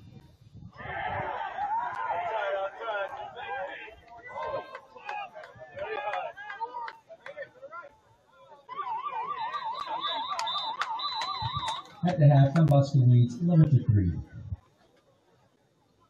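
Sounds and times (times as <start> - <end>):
people calling out: 8.5 - 12.1
warbling siren: 8.7 - 12.0.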